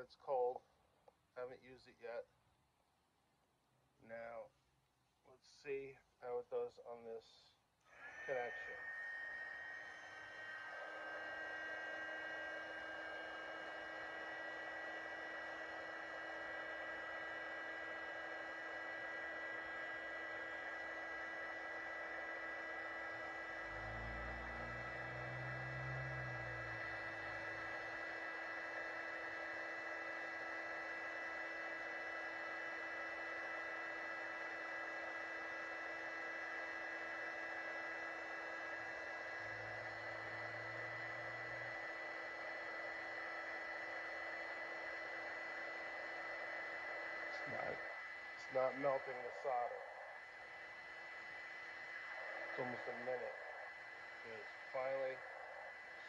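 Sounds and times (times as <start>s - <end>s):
heat gun fan whine: 7.9s - 56.0s.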